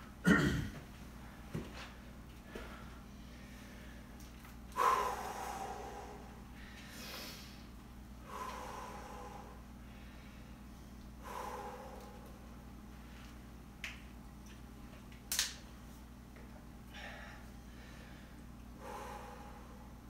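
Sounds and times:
man breathing hard: 0:02.4 - 0:13.4, 0:16.9 - 0:20.0.

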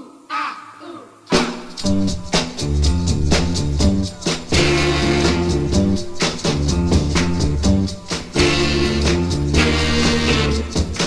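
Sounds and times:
singer shouting: 0:00.0 - 0:01.6
band playing with drums and bass: 0:01.3 - 0:11.0.

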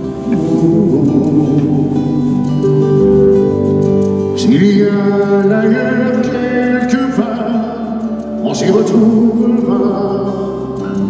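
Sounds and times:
acoustic guitar: 0:00.0 - 0:11.0
wavering held melody notes: 0:00.0 - 0:11.0.

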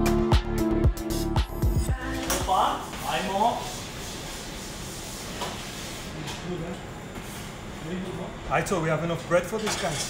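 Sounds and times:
commercial kitchen noise: 0:02.0 - 0:10.0.

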